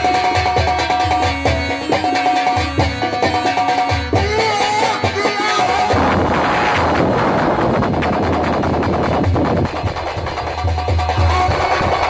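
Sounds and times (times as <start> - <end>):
distorted live folk band music: 0.0 - 12.0
fast percussion: 0.0 - 12.0.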